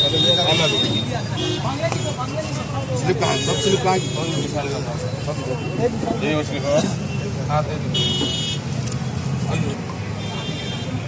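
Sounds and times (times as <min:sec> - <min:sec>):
people talking: 0:00.0 - 0:08.0
traffic rumble: 0:00.0 - 0:11.0.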